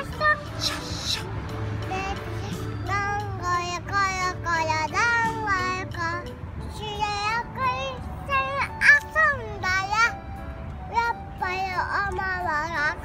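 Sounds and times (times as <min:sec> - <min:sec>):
child singing: 0:00.0 - 0:10.2, 0:10.9 - 0:13.0.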